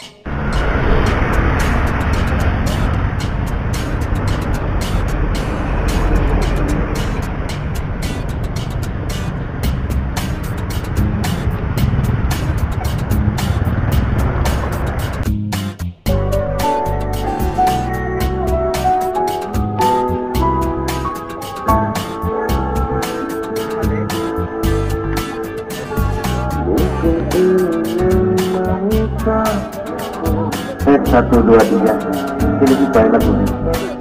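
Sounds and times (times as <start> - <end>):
music: 0.0 - 34.0
road vehicle noise: 0.0 - 34.0
wind noise: 0.3 - 15.2.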